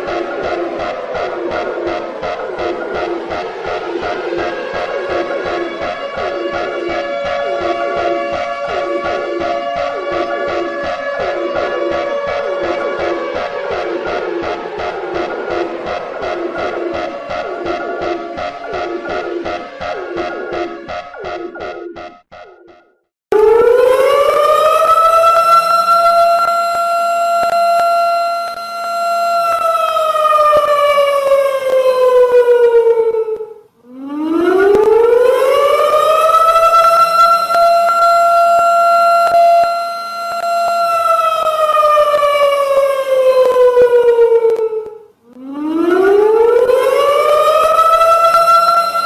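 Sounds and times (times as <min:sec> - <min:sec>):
electronic music: 0:00.0 - 0:49.0
warning siren: 0:00.0 - 0:49.0.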